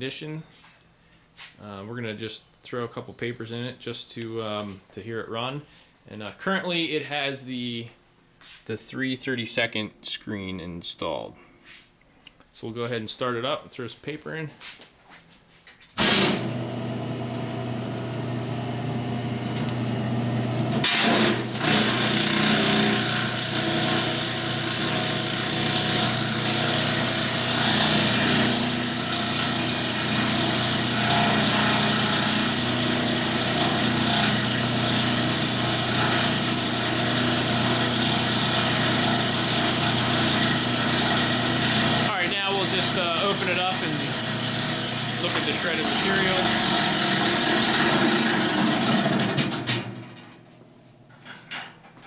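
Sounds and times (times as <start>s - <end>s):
disintegrator motor running: 16.0s - 50.0s
paper being shredded: 20.6s - 49.6s.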